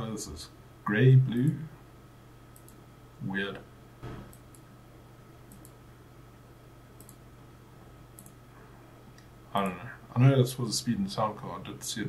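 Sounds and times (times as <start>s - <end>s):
faint steady hum: 0.0s - 12.0s
computer mouse clicking: 2.6s - 2.8s, 4.3s - 4.7s, 5.5s - 5.8s, 7.0s - 7.2s, 8.2s - 8.4s.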